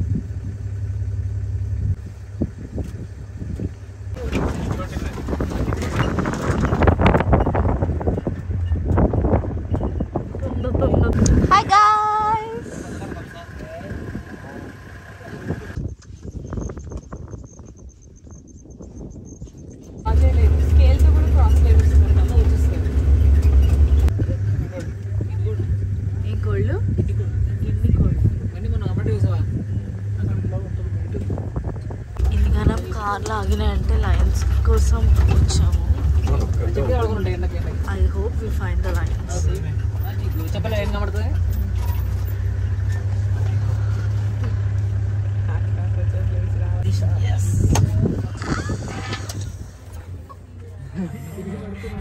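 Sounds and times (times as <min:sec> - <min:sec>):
vehicle engine rumbling: 0:00.0 - 0:52.0
people talking: 0:04.2 - 0:06.5, 0:10.3 - 0:15.8, 0:20.1 - 0:23.2, 0:32.2 - 0:41.4, 0:45.4 - 0:52.0.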